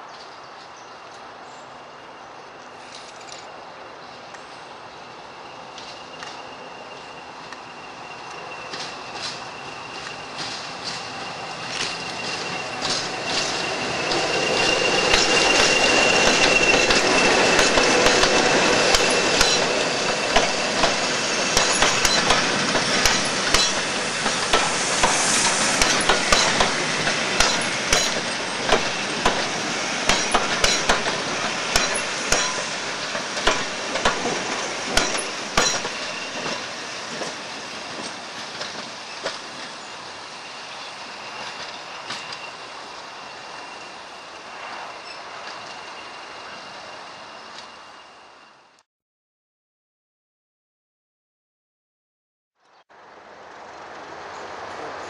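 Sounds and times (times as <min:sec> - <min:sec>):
diesel locomotive engine: 0:01.0 - 0:48.8, 0:52.9 - 0:55.0
high steady whistle: 0:05.4 - 0:22.7
wheels clicking over rail joints: 0:08.7 - 0:25.2, 0:25.8 - 0:39.8.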